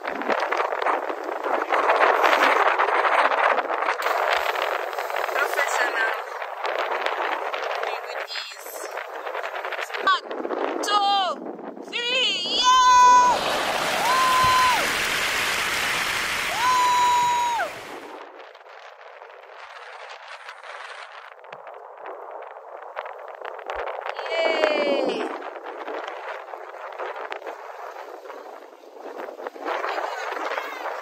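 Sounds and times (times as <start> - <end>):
sea and wind hiss: 0.0 - 10.8, 11.5 - 18.3, 23.0 - 31.0
people shouting and whooping: 12.2 - 15.2, 16.4 - 18.2
loud rushing noise: 12.5 - 18.2.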